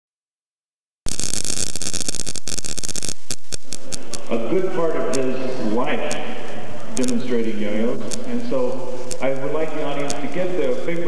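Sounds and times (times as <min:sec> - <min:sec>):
crackles and pops: 0:01.1 - 0:11.0
loud static hiss: 0:01.1 - 0:11.0.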